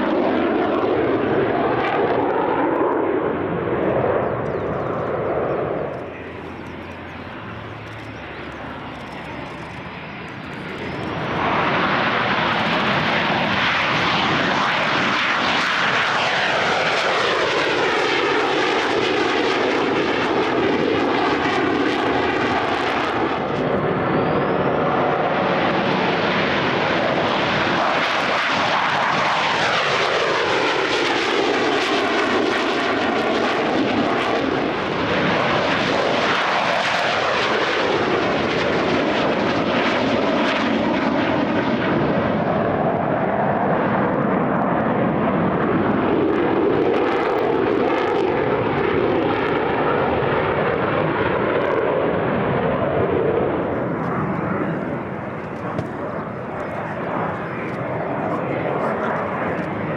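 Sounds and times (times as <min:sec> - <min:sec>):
jet engines taking off: 0:00.0 - 0:59.9.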